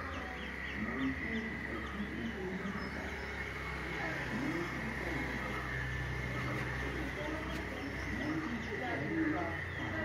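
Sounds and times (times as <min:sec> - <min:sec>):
birds calling: 0:00.0 - 0:10.0
low hum: 0:00.0 - 0:10.0.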